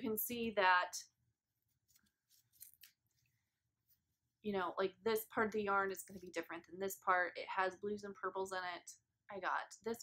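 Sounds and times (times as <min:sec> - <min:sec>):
yarn and paper rustling: 0:01.5 - 0:04.2.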